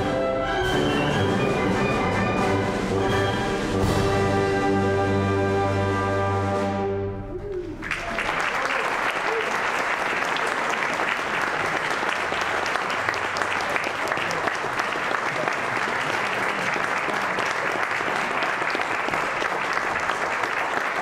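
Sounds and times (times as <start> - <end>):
audience applauding: 7.6 - 21.0.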